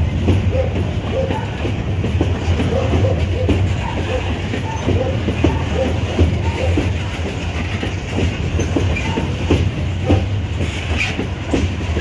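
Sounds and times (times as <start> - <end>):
freight train rumble: 0.0 - 12.0
wheels clacking over rail joints: 0.0 - 12.0.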